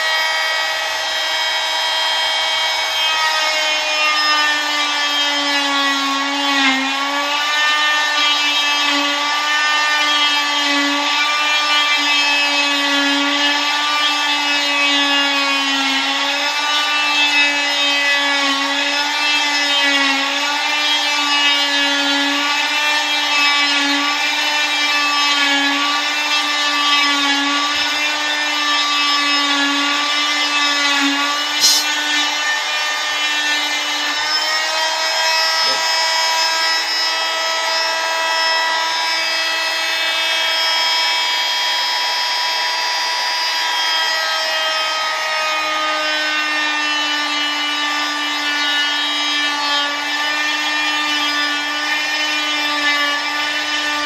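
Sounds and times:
cast saw high whine: 0:27.5 - 0:45.2.

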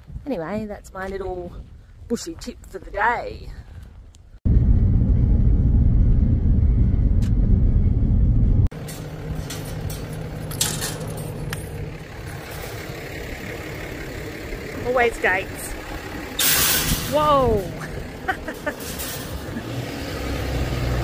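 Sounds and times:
loud low rumble: 0:04.4 - 0:10.5
metal gate latch and chain clinking: 0:08.8 - 0:13.0, 0:16.4 - 0:19.7
pickup truck idling: 0:08.8 - 0:16.5.

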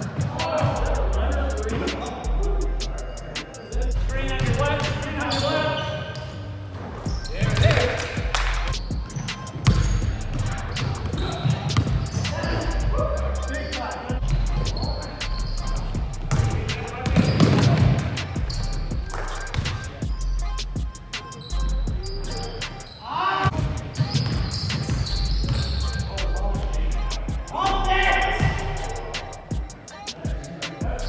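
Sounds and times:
players' voices: 0:00.0 - 0:31.0
basketball bouncing on hardwood floor: 0:09.0 - 0:10.0, 0:10.8 - 0:12.2, 0:16.3 - 0:18.0, 0:23.5 - 0:25.8.

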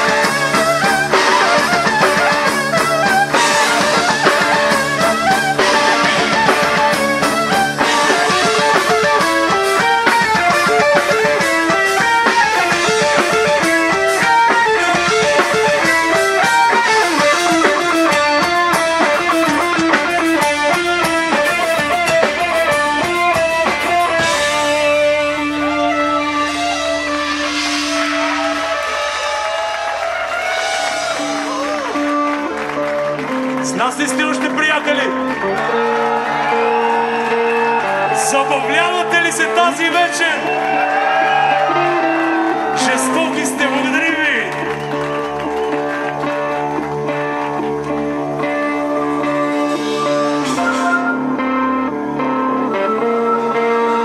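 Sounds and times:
drum kit: 0:00.0 - 0:54.0
electric guitar runs: 0:00.0 - 0:54.0.

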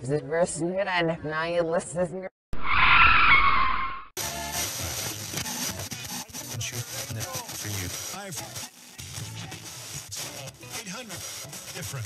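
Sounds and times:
loud screeching sound effect: 0:02.6 - 0:04.1.

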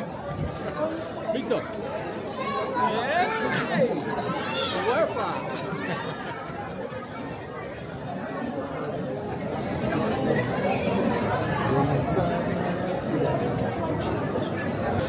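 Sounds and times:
chatter of many voices: 0:00.0 - 0:15.0.

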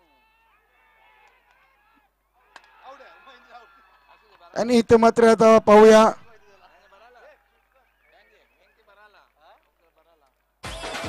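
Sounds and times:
cricket players shouting: 0:00.0 - 0:09.1.

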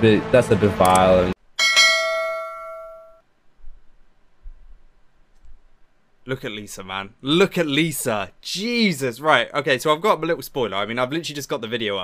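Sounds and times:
bell-like ding ringing: 0:01.6 - 0:03.2.

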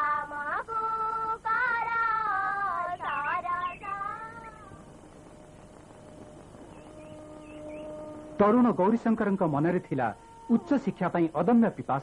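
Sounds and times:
faint steady held tone: 0:00.0 - 0:12.0.

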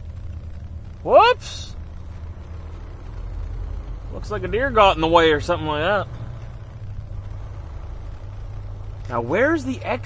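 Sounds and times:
diesel truck engine humming: 0:00.0 - 0:10.0.

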